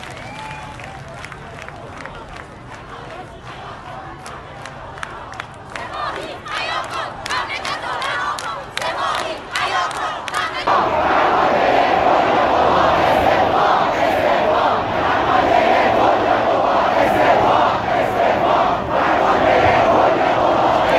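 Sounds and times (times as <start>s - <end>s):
rhythmic hand-clapping: 0.0s - 10.8s
crowd chanting in unison: 2.8s - 20.9s.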